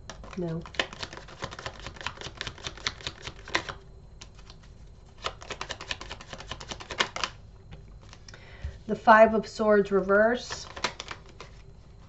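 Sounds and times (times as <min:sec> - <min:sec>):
cards being shuffled: 0:00.0 - 0:07.4, 0:10.4 - 0:11.7.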